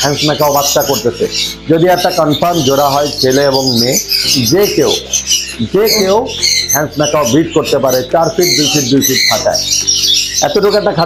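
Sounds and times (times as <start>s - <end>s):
caged birds chirping and squawking: 0.0s - 11.0s.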